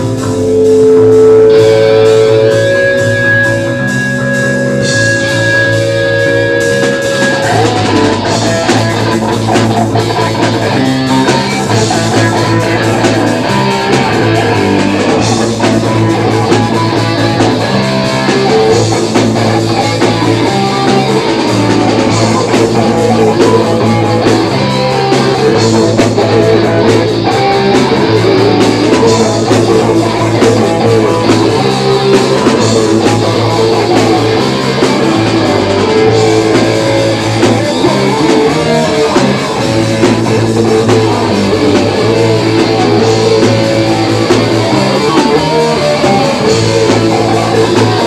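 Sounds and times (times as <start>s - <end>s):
bass guitar: 0.0s - 48.0s
drum kit: 0.0s - 48.0s
electric guitars: 0.0s - 48.0s.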